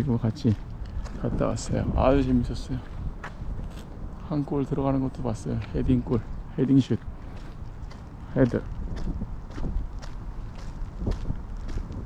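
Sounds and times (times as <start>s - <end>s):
footsteps on wet pavement: 0.0s - 12.0s
low steady rumble: 0.0s - 12.0s.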